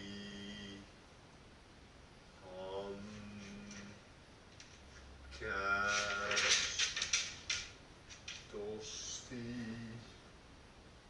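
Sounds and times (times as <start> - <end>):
man chanting om: 0.0 - 0.9, 2.4 - 4.0.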